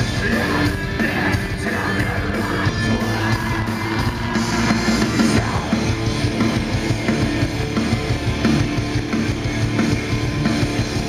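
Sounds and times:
bass guitar: 0.0 - 11.0
distorted electric guitars: 0.0 - 11.0
drum kit: 0.0 - 11.0.

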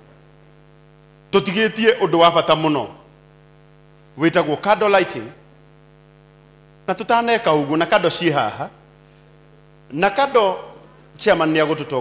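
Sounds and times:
electrical mains hum: 0.0 - 12.0
man speaking into a microphone: 1.3 - 3.1, 4.2 - 5.4, 6.9 - 8.8, 9.9 - 12.0.

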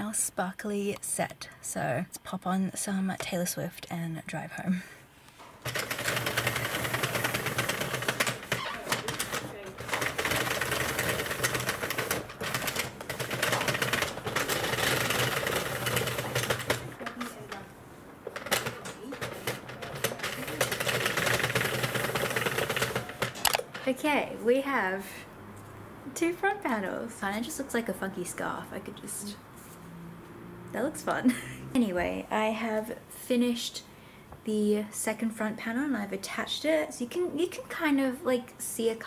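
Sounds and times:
knitting machine needles clattering: 5.6 - 17.7, 18.3 - 24.0.

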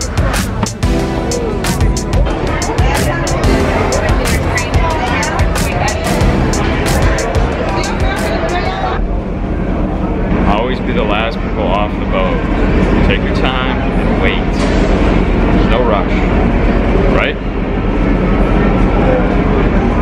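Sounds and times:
people talking: 0.0 - 14.9, 15.5 - 20.0
boat engine droning: 0.0 - 20.0.

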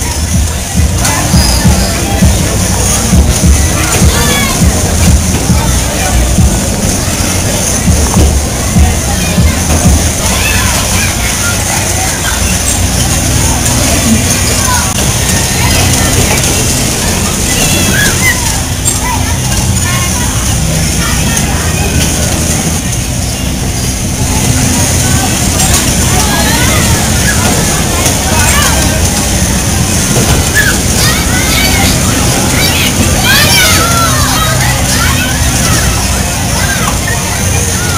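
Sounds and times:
babble of voices: 0.0 - 37.9
bumper cars humming and rolling: 0.0 - 37.9.

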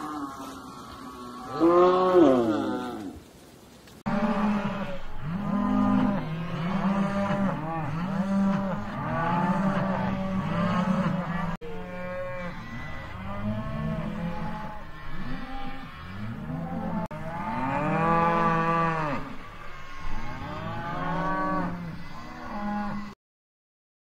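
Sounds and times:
cattle mooing: 0.0 - 3.2, 4.1 - 23.2.

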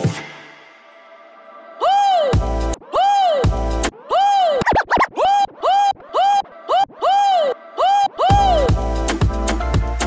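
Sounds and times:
turntable scratching: 4.6 - 7.0.

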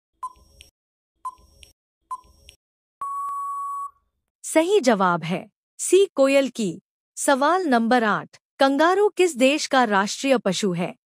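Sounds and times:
long electronic beep: 3.0 - 4.0.

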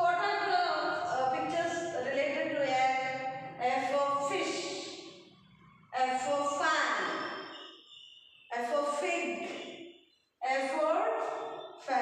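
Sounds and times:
woman talking: 0.0 - 4.9, 6.0 - 7.2, 8.5 - 9.6, 10.4 - 12.0.

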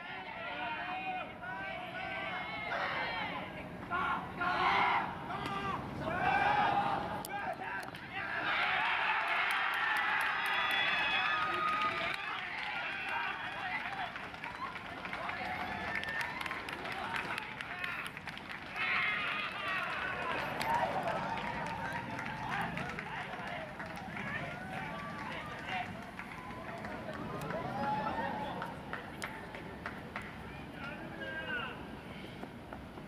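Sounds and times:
crowd shouting and cheering: 0.0 - 18.1, 18.7 - 29.6.

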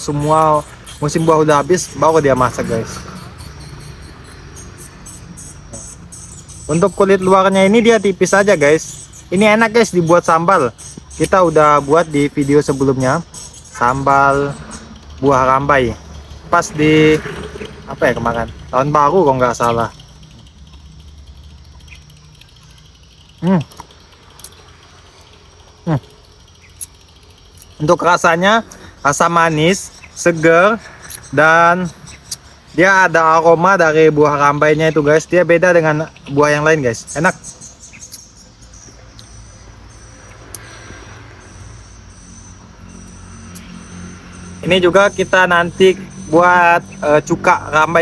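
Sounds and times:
faint insect noise: 0.0 - 48.0.

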